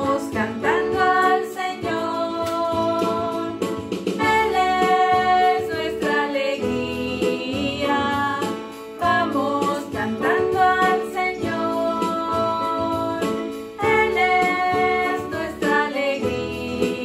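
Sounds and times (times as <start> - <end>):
electronic keyboard: 0.0 - 17.0
women singing a hymn: 0.0 - 17.0.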